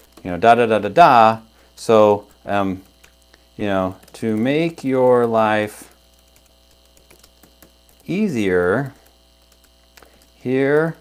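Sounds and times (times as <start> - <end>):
low electrical hum: 0.0 - 11.0
keyboard typing clicks: 3.8 - 5.5, 6.1 - 8.1, 8.9 - 11.0.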